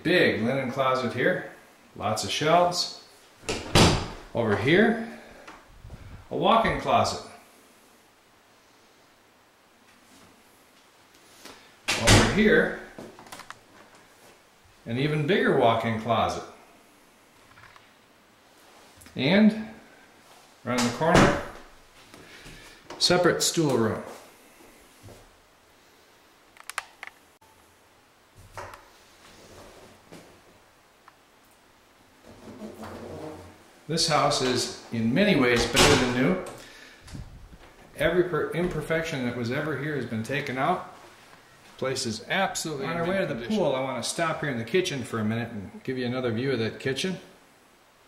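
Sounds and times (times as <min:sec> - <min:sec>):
soft low thumps: 0:05.7 - 0:06.8
sharp clicks: 0:26.6 - 0:27.2.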